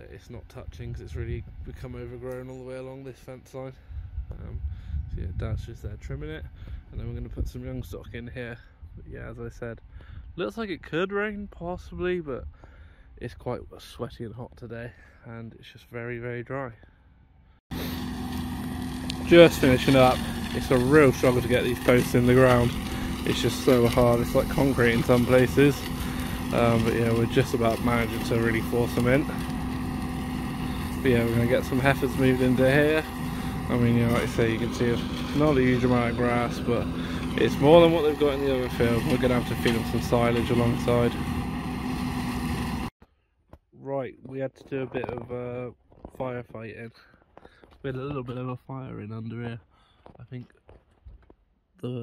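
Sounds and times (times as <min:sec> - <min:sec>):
tractor flail machinery droning: 0:17.4 - 0:42.9
hedge trimmer mechanical hum: 0:17.7 - 0:42.9.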